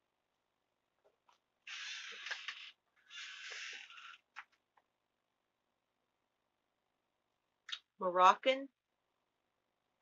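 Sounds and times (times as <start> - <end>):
harsh rasping of packaging: 1.7 - 4.2.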